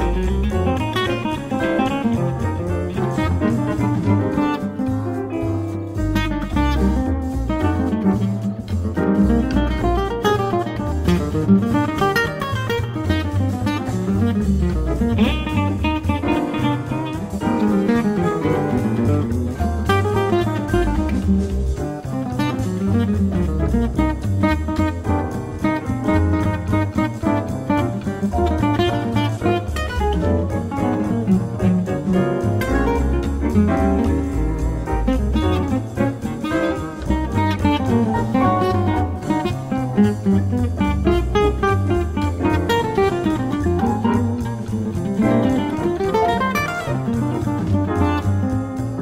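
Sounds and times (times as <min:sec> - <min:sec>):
swing jazz instrumental: 0:00.0 - 0:49.0.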